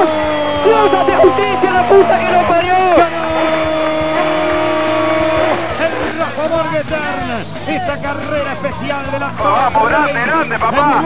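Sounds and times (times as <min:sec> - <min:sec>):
race car engine at high revs: 0:01.5 - 0:06.5.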